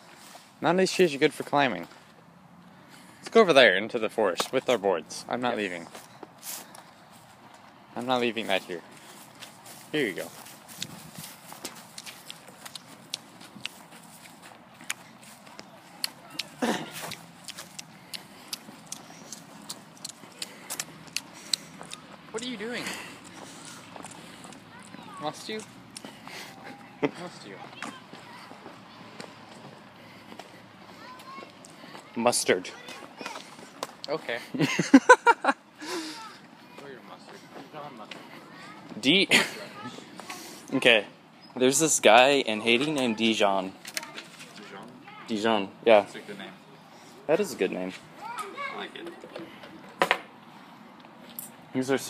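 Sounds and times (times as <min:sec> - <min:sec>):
distant voices: 0:00.0 - 0:52.0
footstep in dry grass: 0:05.8 - 0:22.4.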